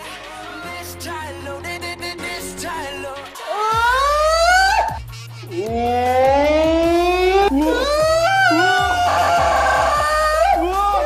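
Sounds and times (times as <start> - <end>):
background music with bass: 0.0 - 11.0
man's high straining cries: 7.6 - 11.0.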